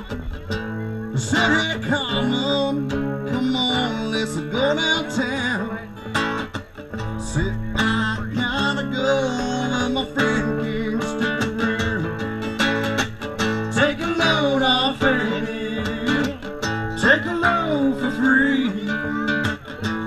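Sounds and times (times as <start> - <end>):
strummed acoustic guitar: 0.0 - 20.0
person singing: 13.7 - 20.0.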